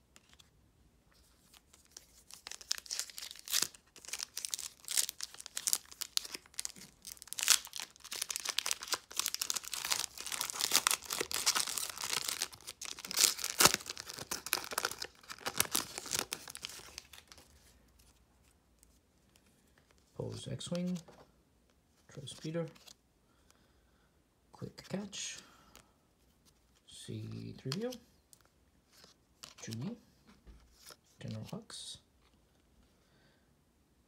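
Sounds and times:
foil wrapper tearing and crinkling: 1.9 - 17.3.

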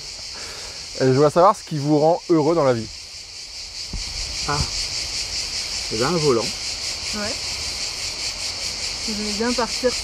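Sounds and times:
cicadas singing: 0.0 - 10.0.

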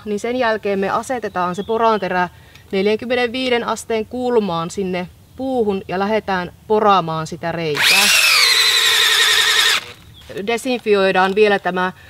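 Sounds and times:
cordless drill boring into wood: 7.8 - 10.0.

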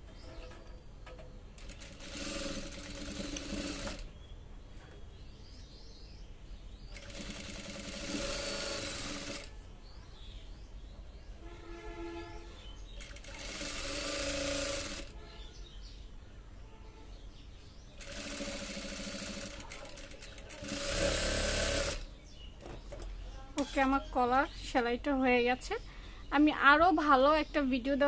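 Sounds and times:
sewing machine stitching: 1.6 - 4.1, 6.9 - 9.6, 13.0 - 15.1, 18.0 - 22.1.

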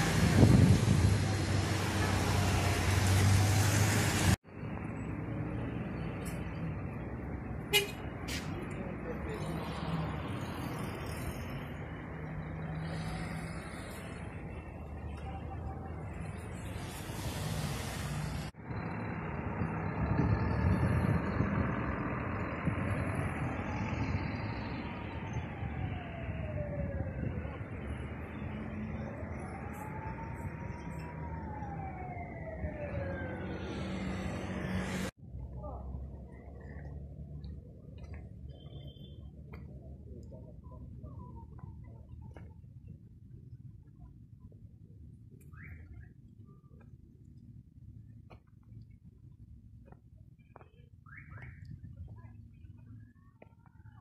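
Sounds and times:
traffic rumble: 0.0 - 54.0
siren wailing: 22.5 - 35.1.

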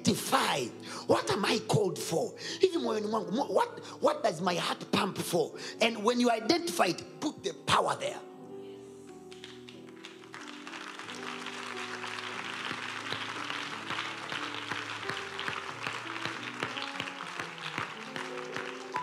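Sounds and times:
crowd applauding: 9.3 - 19.0.

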